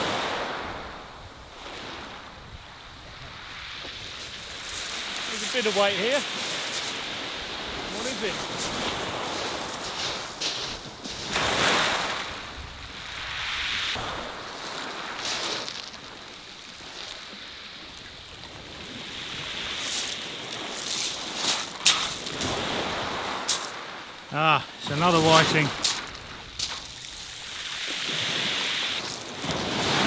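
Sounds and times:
waves washing over shingle: 0:00.0 - 0:02.4, 0:03.0 - 0:30.0.

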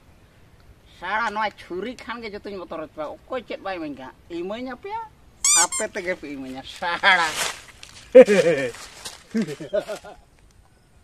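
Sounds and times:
man's high-pitched squeal: 0:05.5 - 0:05.9
man speaking: 0:05.5 - 0:07.4, 0:08.2 - 0:08.8.

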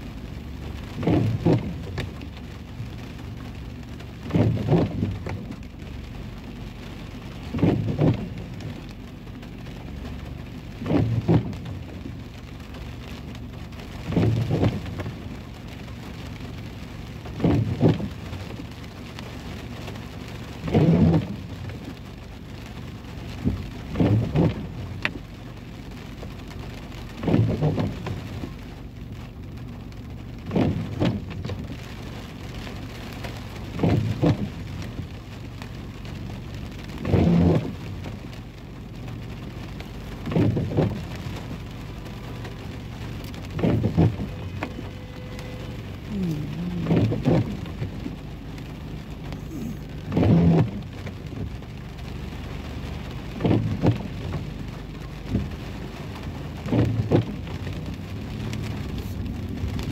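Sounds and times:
rain falling on a car: 0:00.0 - 0:59.9
windshield wipers passing: 0:00.0 - 0:59.9.

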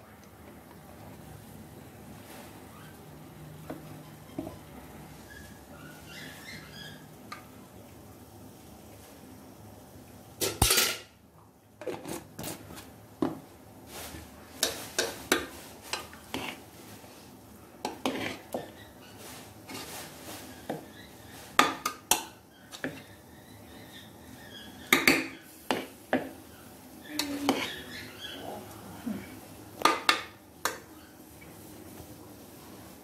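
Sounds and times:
metal spoon scraping a pot: 0:14.6 - 0:16.6, 0:17.8 - 0:25.9, 0:27.2 - 0:28.5.

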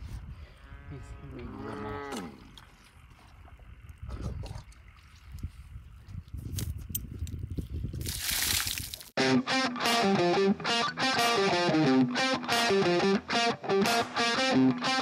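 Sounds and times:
cow mooing: 0:00.6 - 0:02.5.

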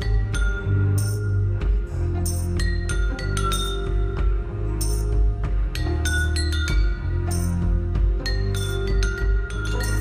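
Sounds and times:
metal percussion chime-like strikes: 0:00.0 - 0:01.4, 0:02.2 - 0:05.2, 0:05.8 - 0:10.0.

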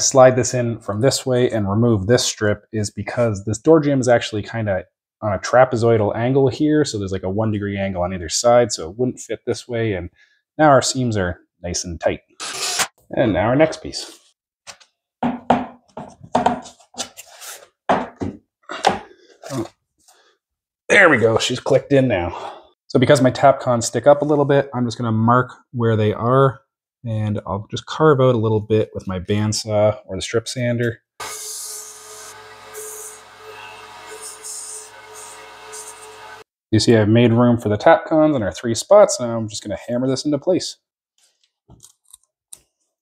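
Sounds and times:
bandsaw humming: 0:31.2 - 0:36.4
saw blade cutting hiss: 0:31.2 - 0:36.4.

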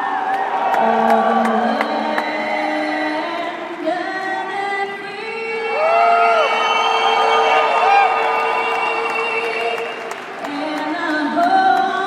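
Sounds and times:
crowd cheering and whooping: 0:00.0 - 0:03.0, 0:05.5 - 0:10.2
woman singing over sound system: 0:00.8 - 0:06.5, 0:08.3 - 0:12.0.

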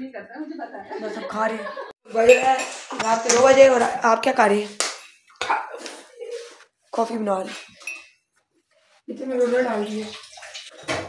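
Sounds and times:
person's voice: 0:00.8 - 0:04.8.

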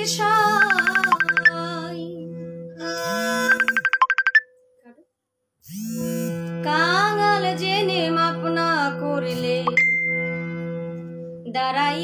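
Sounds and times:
rapid pulsing high note: 0:00.5 - 0:01.6, 0:03.0 - 0:04.4
harmonium drone: 0:01.6 - 0:03.7, 0:05.7 - 0:11.5.

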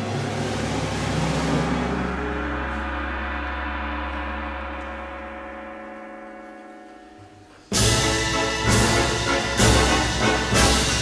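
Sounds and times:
orchestral film score: 0:00.0 - 0:11.0.

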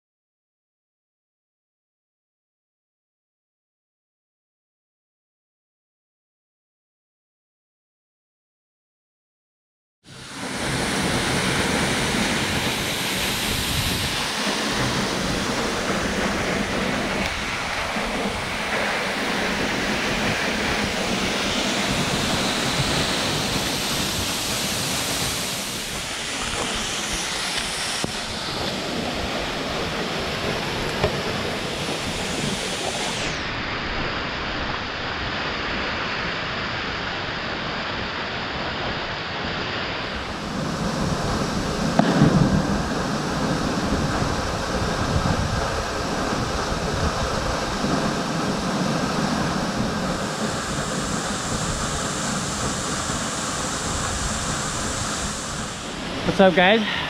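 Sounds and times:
waterfall rushing: 0:10.1 - 0:57.0.

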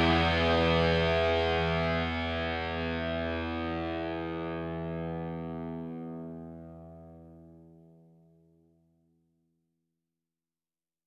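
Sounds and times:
distorted electric guitar chord: 0:00.0 - 0:07.7.

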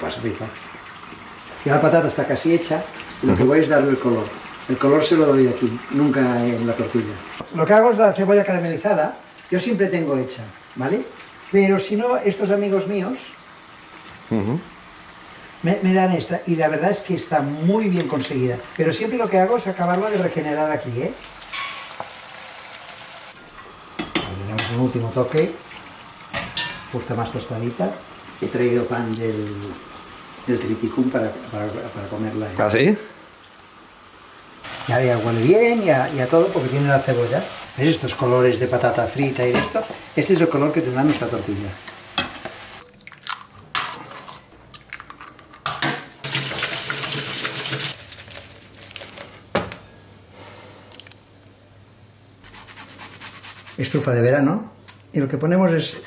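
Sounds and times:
potatoes sizzling in oil: 0:00.0 - 0:42.9, 0:46.2 - 0:48.1
eggs cracking into bowl: 0:42.8 - 0:43.6.

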